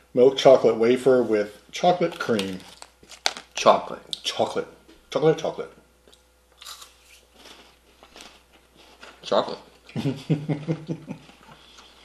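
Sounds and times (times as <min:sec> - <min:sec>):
chocolate wafer crunching: 0:02.0 - 0:03.8.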